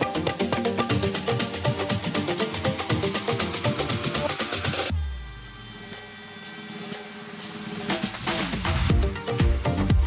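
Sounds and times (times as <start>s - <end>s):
dance music: 0.0s - 10.0s
drums: 0.0s - 10.0s.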